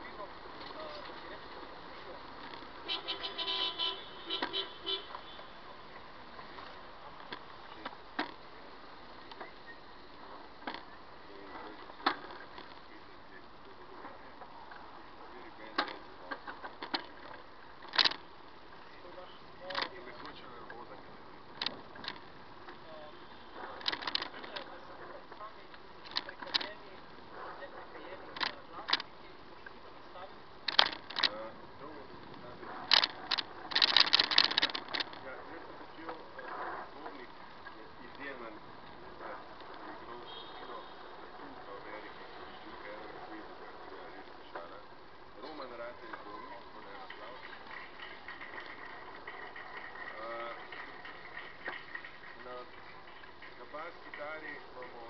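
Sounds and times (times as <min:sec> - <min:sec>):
street noise: 0:00.0 - 0:55.0
faint indistinct voices: 0:04.0 - 0:55.0
camera handling clicks and knocks: 0:32.9 - 0:35.2.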